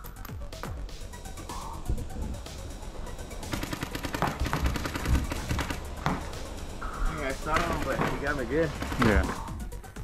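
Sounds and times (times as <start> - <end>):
paintball markers firing: 3.5 - 6.4, 7.4 - 9.5.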